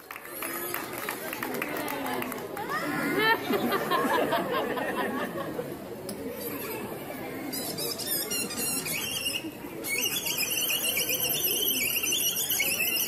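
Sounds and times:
crowd murmur: 0.0 - 13.0
shrill warbling whistle: 8.0 - 13.0.

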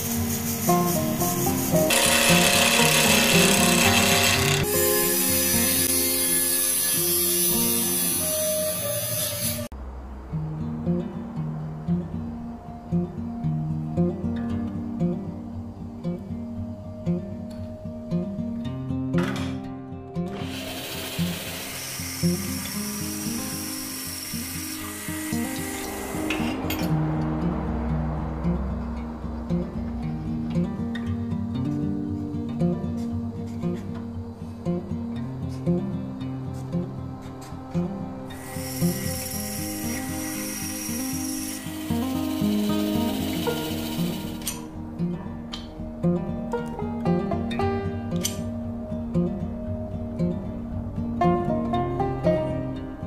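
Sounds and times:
wood scraping on a lathe: 0.0 - 9.7, 20.4 - 26.6, 38.4 - 44.6
acoustic guitar music: 0.0 - 53.0
wood scraping on metal: 0.6 - 4.7.

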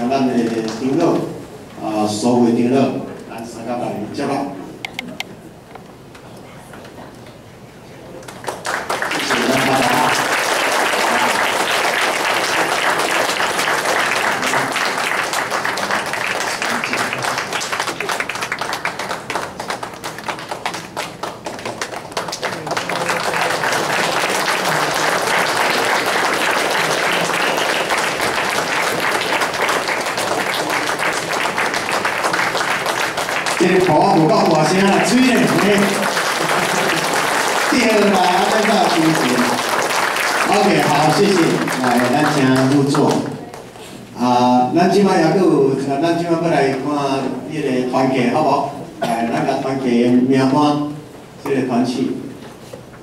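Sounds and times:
congregation applauding: 8.2 - 43.8.

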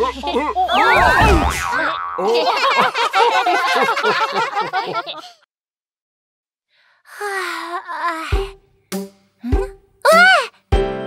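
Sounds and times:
cartoon boing pitch glides: 0.7 - 2.3.

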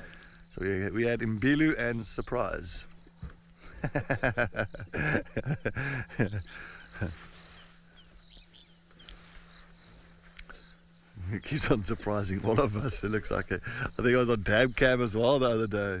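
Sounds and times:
faint bird chirps: 0.0 - 16.0
man laughing: 3.6 - 7.3, 11.2 - 14.2.

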